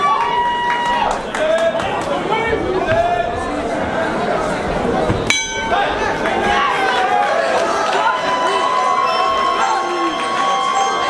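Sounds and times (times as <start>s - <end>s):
crowd chatter in a hall: 0.0s - 11.0s
boxing ring bell ringing: 5.3s - 6.0s.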